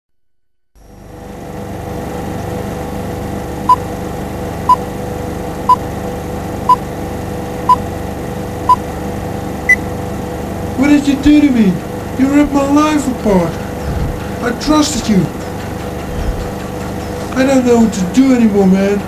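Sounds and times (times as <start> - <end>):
old film hiss and hum: 0.9 - 19.0.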